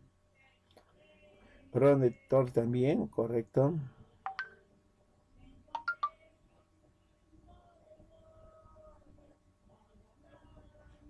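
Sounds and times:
short electronic beeps: 5.8s - 6.2s.

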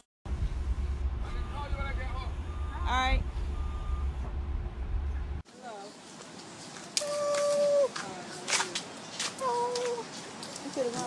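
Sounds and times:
bus engine idling: 0.3s - 5.4s
high steady beep: 1.2s - 4.3s.

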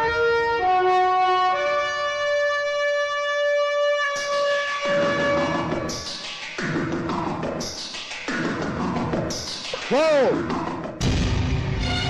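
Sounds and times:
horn-like note: 0.0s - 5.9s, 11.8s - 12.0s.

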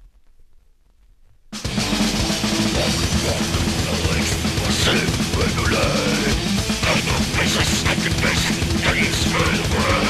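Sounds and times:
grindcore band with fast drums: 1.6s - 10.0s.

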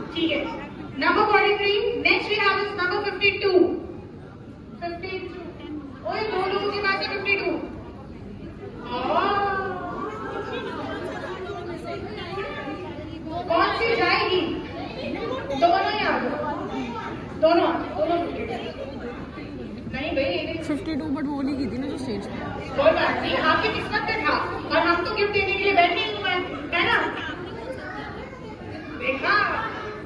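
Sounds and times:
crowd chatter in a large hall: 0.0s - 30.0s
women talking: 22.3s - 28.1s.

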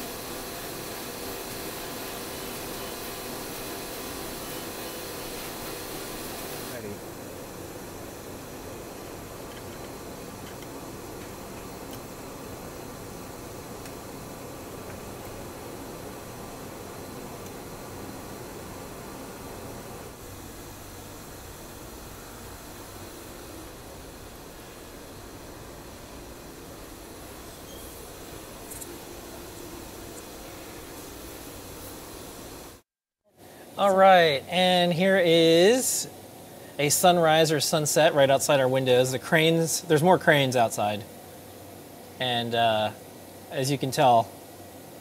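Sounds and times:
even hiss: 0.0s - 45.0s.

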